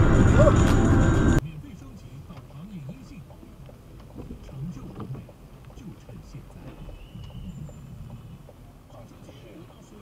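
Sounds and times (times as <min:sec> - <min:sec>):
engine and road hum: 0:00.0 - 0:10.0.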